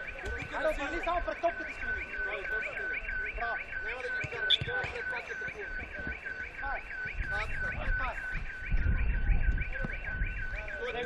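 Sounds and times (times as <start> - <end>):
electronic alarm warbling: 0.0 - 11.0.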